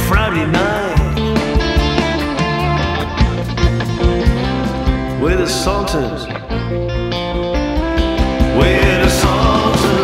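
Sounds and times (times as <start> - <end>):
bass and drums: 0.0 - 10.0
electric guitar: 0.0 - 10.0.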